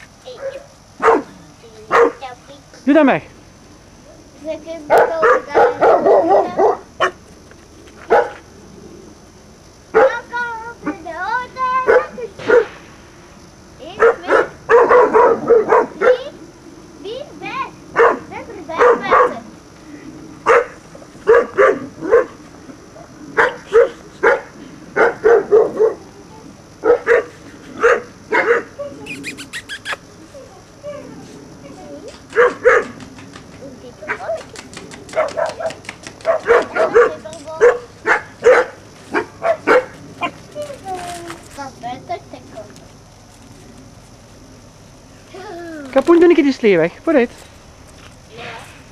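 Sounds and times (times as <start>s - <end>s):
puppies barking and yapping: 0.0s - 2.4s, 4.0s - 8.6s, 9.9s - 12.8s, 13.8s - 16.4s, 17.1s - 44.4s.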